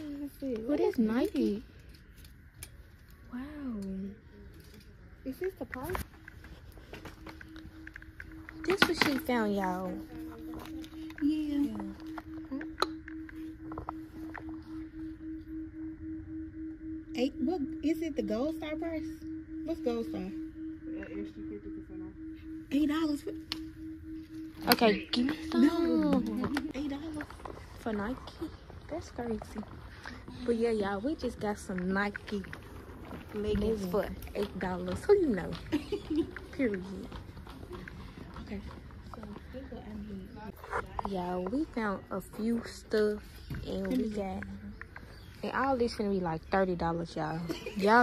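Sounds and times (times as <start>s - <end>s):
pulsing low electronic hum: 0.0s - 48.0s
quiet indistinct talking: 0.0s - 48.0s.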